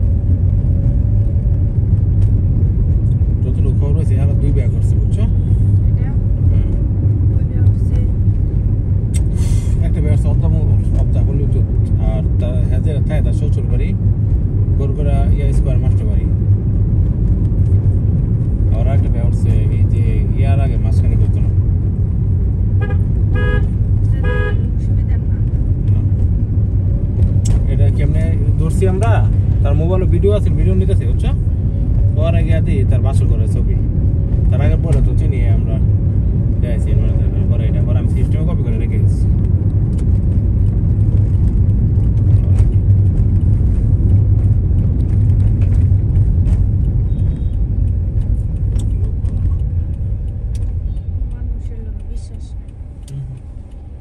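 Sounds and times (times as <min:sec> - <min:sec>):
car cabin rumble: 0:00.0 - 0:54.0
car horn toots: 0:22.8 - 0:24.7.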